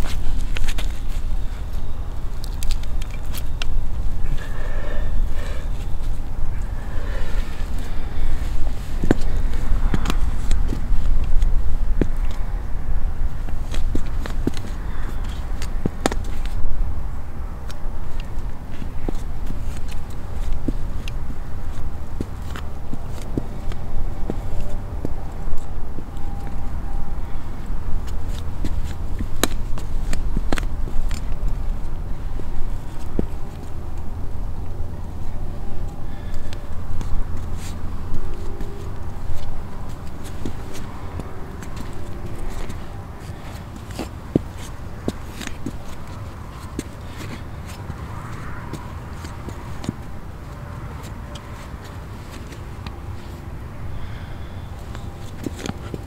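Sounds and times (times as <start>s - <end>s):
steady low rumble: 0.0s - 56.0s.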